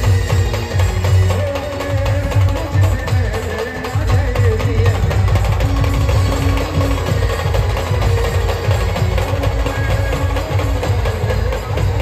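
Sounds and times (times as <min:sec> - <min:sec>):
rapid heavy drum beats: 0:00.0 - 0:12.0
street band playing: 0:00.0 - 0:12.0.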